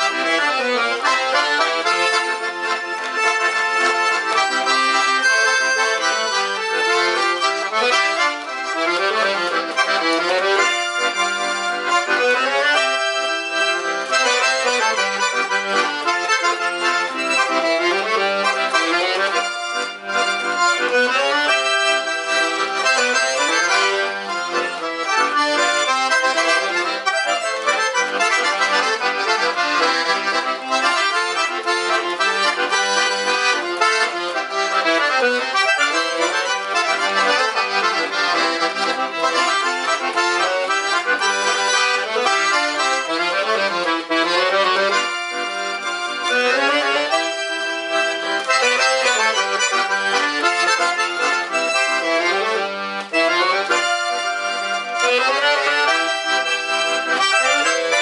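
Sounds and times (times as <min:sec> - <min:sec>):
piano accordion melody: 0:00.0 - 0:58.0.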